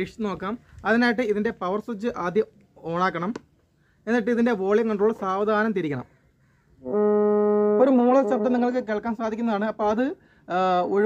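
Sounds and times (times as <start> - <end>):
man humming through megaphone: 6.9 - 8.9.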